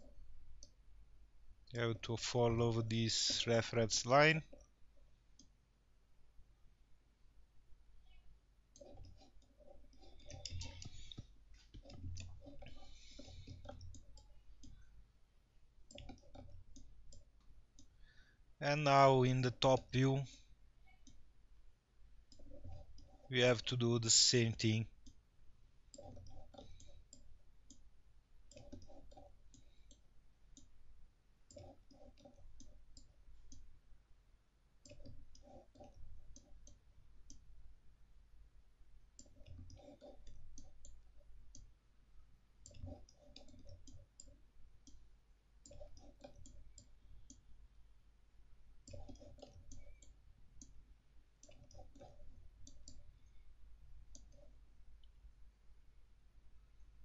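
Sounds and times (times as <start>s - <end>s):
computer mouse clicking: 8.7s - 14.9s, 15.8s - 18.0s, 22.3s - 23.3s, 25.9s - 30.8s, 31.5s - 33.7s, 34.8s - 37.5s, 39.2s - 41.7s, 42.6s - 47.5s, 48.8s - 55.2s.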